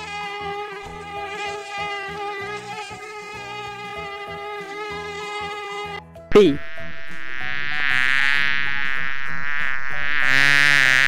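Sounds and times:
mosquito wingbeat whine: 0:00.0 - 0:06.0, 0:06.6 - 0:11.0.

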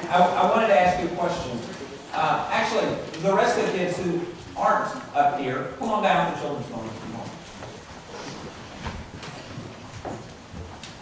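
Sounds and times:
footsteps: 0:06.8 - 0:11.0.

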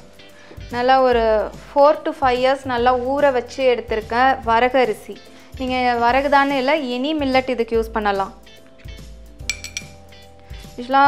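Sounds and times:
ceramic bowl clinking on steel: 0:09.4 - 0:10.0.

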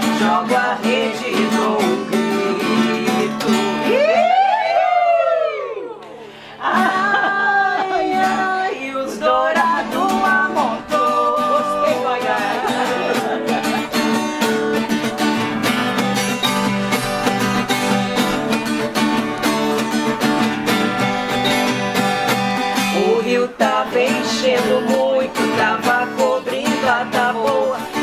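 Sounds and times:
acoustic guitars strumming: 0:00.0 - 0:04.8, 0:06.1 - 0:28.0
person singing: 0:00.0 - 0:15.4, 0:22.8 - 0:28.0.

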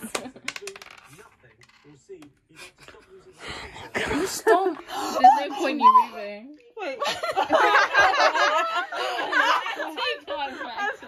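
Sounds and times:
die clattering on a table: 0:00.0 - 0:01.8.

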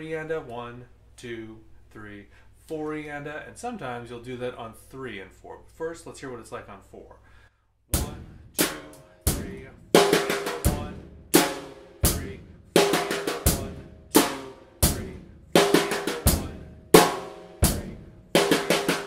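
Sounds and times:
drum kit rock beat: 0:07.9 - 0:19.0
snare drum fill: 0:15.6 - 0:19.0.

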